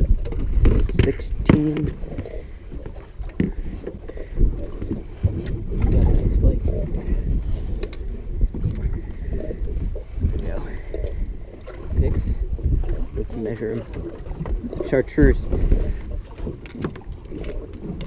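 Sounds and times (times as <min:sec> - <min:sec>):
wind rumble on microphone: 0:00.0 - 0:18.0.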